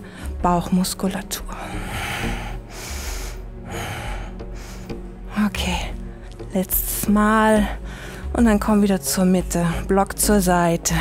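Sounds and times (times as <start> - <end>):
quiet background music: 0.0 - 11.0
woman breathing hard: 1.6 - 5.2.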